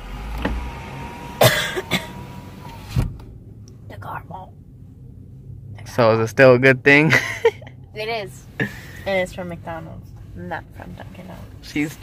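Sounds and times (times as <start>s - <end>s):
woman coughing and choking: 1.4s - 2.2s.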